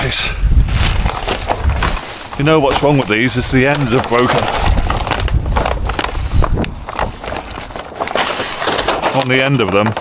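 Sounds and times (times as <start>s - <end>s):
plastic packaging crinkling: 0.7s - 10.0s.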